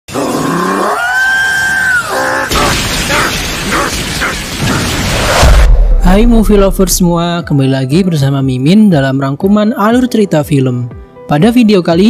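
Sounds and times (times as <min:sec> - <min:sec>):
monster growling and screeching: 0:00.1 - 0:05.7.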